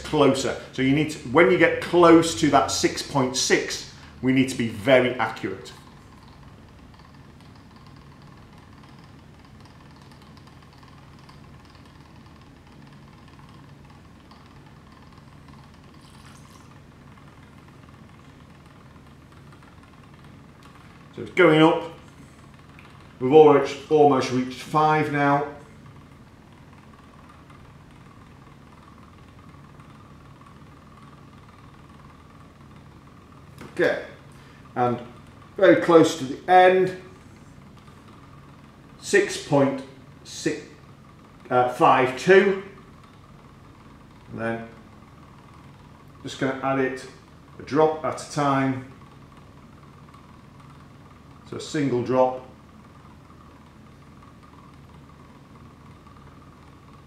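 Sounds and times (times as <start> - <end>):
laboratory equipment hum: 0.0 - 57.0
thin high whine: 15.0 - 16.8.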